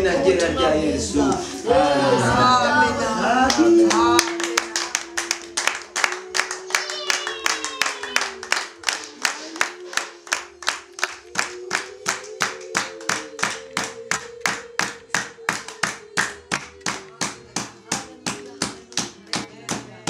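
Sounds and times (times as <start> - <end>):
group singing long held notes: 0.0 - 20.0
hands clapping in rhythm: 3.4 - 20.0.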